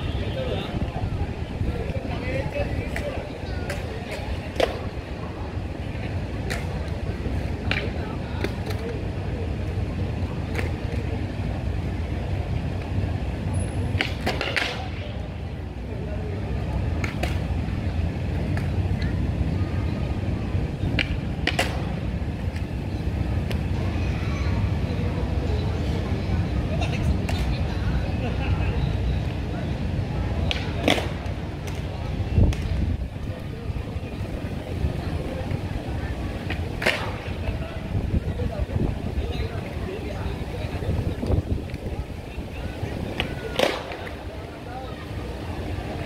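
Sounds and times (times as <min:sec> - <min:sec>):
skate wheels rumbling on paving: 0:00.0 - 0:46.0
skates clicking on pavement: 0:01.6 - 0:24.0, 0:26.9 - 0:27.7, 0:30.3 - 0:46.0.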